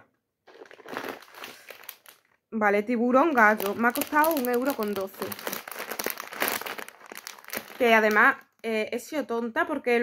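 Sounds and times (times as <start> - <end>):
plastic packet crinkling: 0.4 - 2.4, 3.0 - 8.7.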